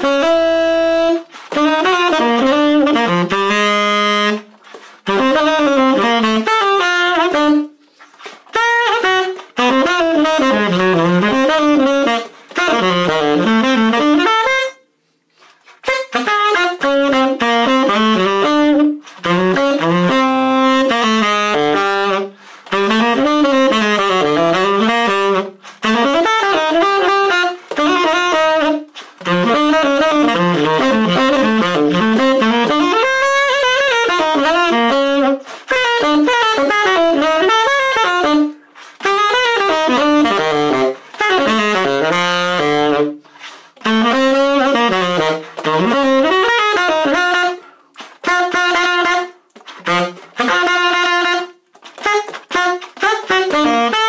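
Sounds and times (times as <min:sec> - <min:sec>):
tenor saxophone playing jazz: 0:00.0 - 0:54.0.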